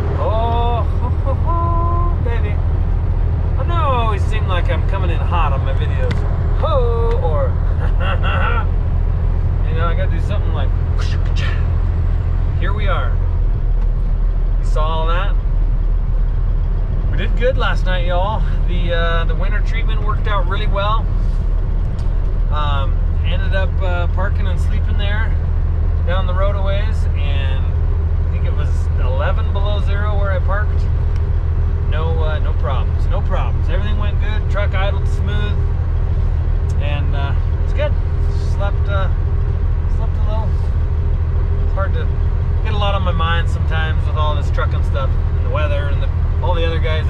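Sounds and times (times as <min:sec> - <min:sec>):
man talking: 0:00.0 - 0:02.6, 0:03.6 - 0:08.7, 0:09.6 - 0:11.8, 0:12.6 - 0:13.2, 0:14.6 - 0:15.4, 0:17.1 - 0:21.1, 0:22.5 - 0:25.4, 0:26.0 - 0:31.0, 0:31.8 - 0:35.7, 0:36.7 - 0:40.8, 0:41.6 - 0:47.0
diesel truck engine drone: 0:00.0 - 0:47.0
road noise: 0:00.0 - 0:47.0.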